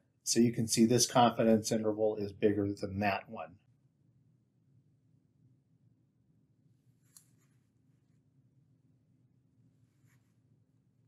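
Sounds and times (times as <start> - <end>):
stylus scratching tablet screen: 7.0 - 8.2.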